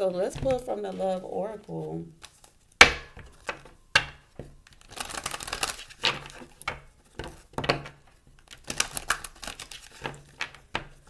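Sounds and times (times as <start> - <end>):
cards being riffle-shuffled: 1.6 - 2.6, 4.7 - 11.0.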